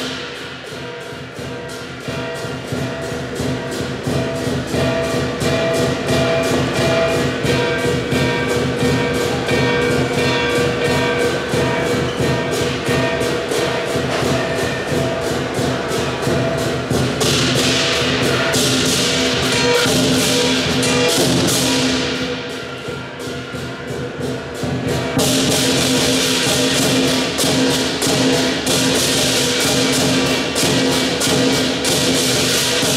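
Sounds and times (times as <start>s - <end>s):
clashing cymbals: 0.0s - 32.9s
large drum beating: 0.0s - 32.9s
ringing gong: 0.0s - 32.9s.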